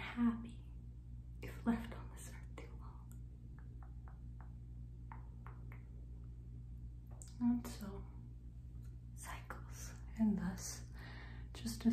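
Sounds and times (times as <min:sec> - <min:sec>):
low steady hum: 0:00.0 - 0:11.9.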